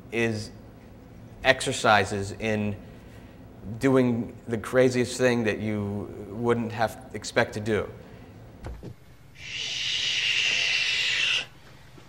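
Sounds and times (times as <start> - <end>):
steady hiss: 9.4 - 11.8.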